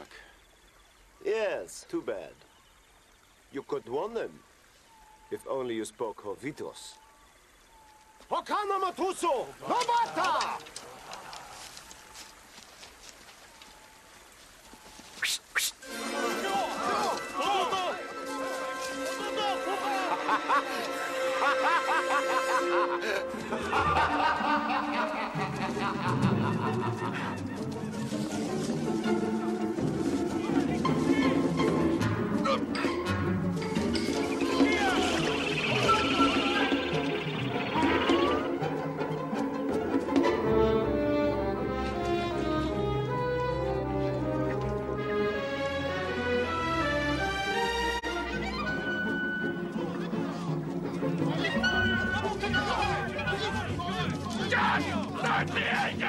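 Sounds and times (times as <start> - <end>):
quiet outdoor ambience: 0.0 - 56.0
orchestral score: 15.8 - 56.0.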